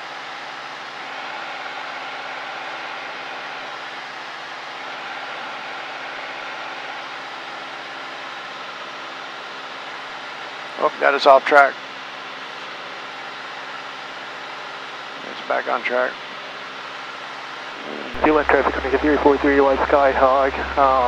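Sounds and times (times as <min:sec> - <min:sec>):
propeller plane engine droning: 0:00.0 - 0:21.0.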